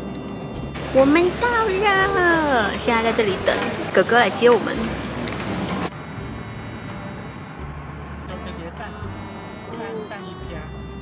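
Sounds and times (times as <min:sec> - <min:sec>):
low vehicle rumble: 0:00.0 - 0:11.0.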